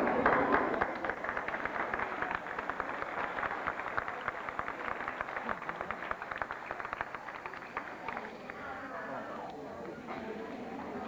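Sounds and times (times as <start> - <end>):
audience applauding: 0.0 - 8.8.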